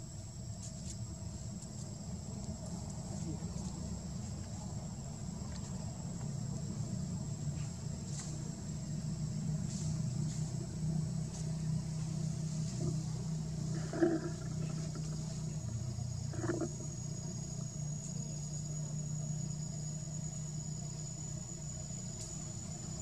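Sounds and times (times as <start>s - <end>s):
low motor hum: 1.0s - 23.0s.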